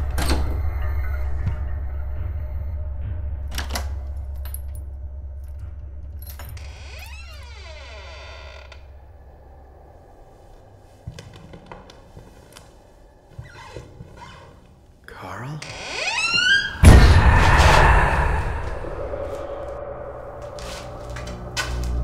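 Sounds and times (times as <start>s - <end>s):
deep low drone: 0.0s - 13.3s, 15.8s - 22.0s.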